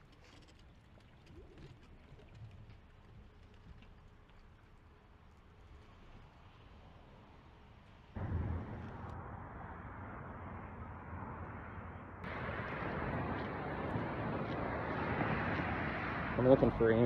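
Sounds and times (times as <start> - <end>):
wind buffeting microphone: 8.2 - 17.0.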